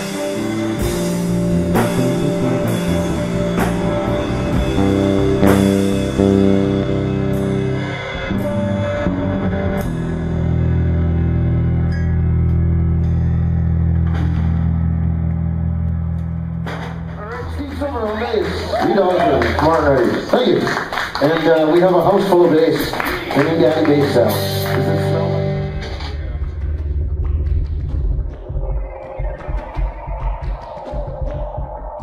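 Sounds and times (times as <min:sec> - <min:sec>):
low held bass chord: 0:00.0 - 0:17.6, 0:23.4 - 0:28.6
rock band playing: 0:00.0 - 0:20.0, 0:22.2 - 0:28.1.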